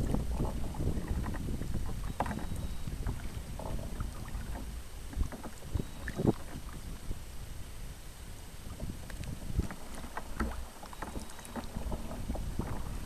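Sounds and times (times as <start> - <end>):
paddle splashing water: 0.0 - 13.0
wind rumble on microphone: 0.0 - 13.0.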